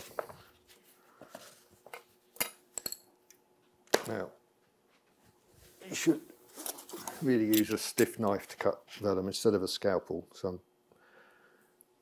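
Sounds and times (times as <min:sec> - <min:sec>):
metal tools clicking and clinking: 0:02.4 - 0:03.1, 0:07.4 - 0:08.1.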